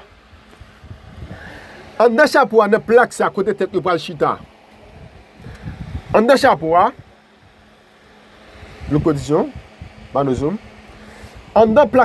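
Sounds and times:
background hum and hiss: 0.0 - 12.0
man speaking: 2.0 - 4.5, 6.1 - 7.0, 8.9 - 10.6, 11.5 - 12.0.

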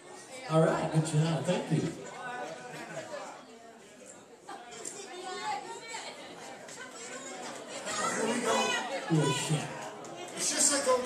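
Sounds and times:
audience chatter: 0.0 - 11.0.

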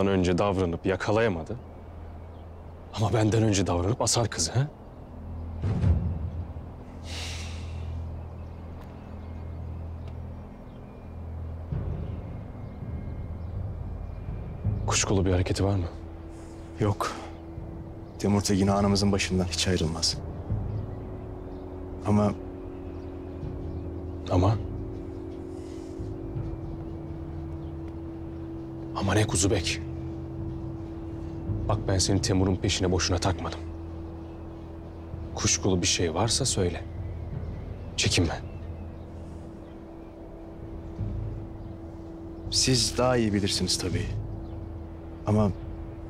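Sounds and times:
dramatic background drone: 0.0 - 46.0.

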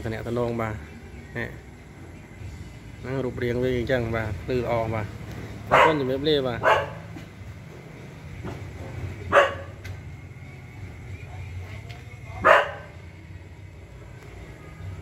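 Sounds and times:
dog barking: 5.7 - 7.1, 9.3 - 9.8, 12.4 - 13.0.

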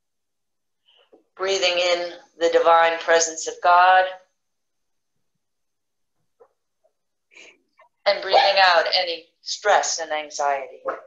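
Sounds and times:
woman speaking: 1.4 - 4.3, 8.1 - 11.0.

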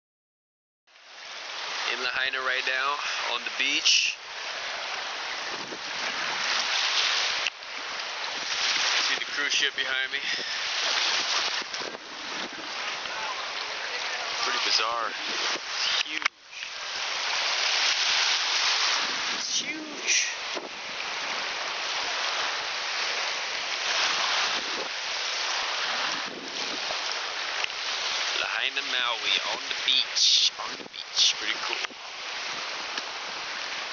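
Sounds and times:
small waves washing on shore: 0.9 - 33.9
wind across microphone: 5.3 - 7.6, 10.2 - 13.4, 15.1 - 28.2.

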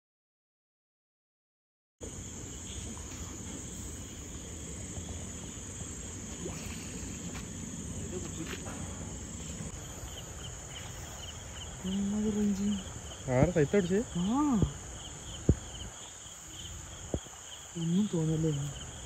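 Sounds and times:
low outdoor rumble: 2.0 - 16.1
crickets trilling: 2.0 - 19.0
insect chirps: 2.0 - 19.0.

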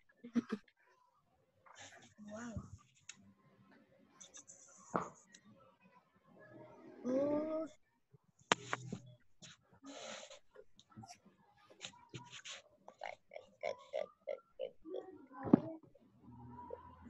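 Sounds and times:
muffled laughter: 0.2 - 0.6.

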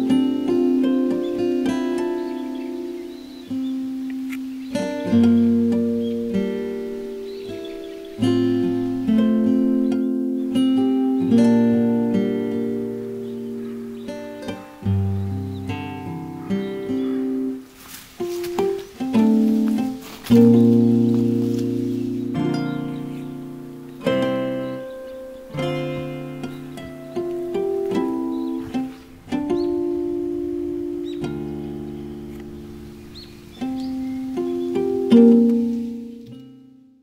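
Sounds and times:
plucked acoustic guitar: 0.0 - 37.0.

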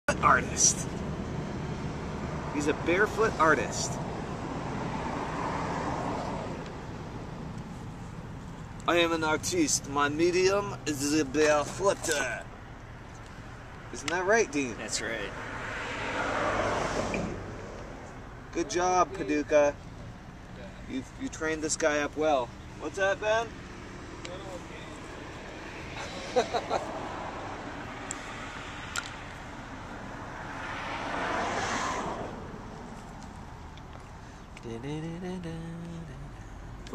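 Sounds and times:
outdoor background noise: 0.1 - 36.9
road vehicle passing: 0.1 - 36.9
person laughing: 25.9 - 27.0.

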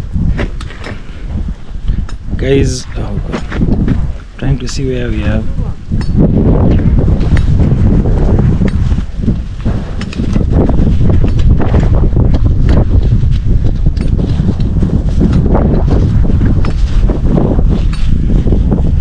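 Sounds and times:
wind on microphone: 0.0 - 19.0.

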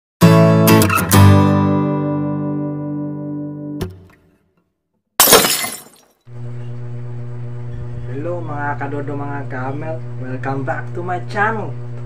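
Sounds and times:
guitar chord ringing: 0.2 - 4.0.

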